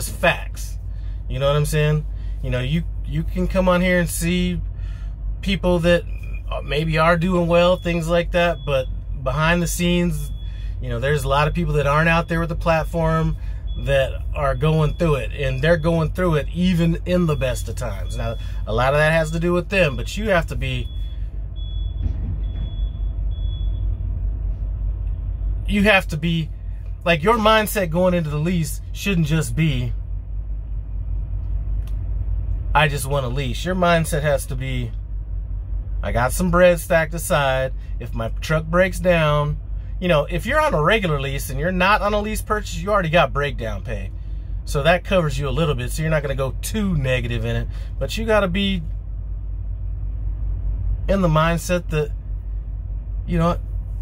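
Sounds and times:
diesel truck engine idling: 0.0 - 54.0
faint high whine: 4.0 - 22.0.

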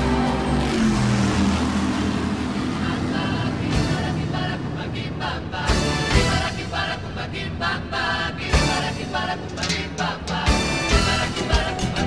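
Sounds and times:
powerboat engines droning: 0.0 - 10.9.

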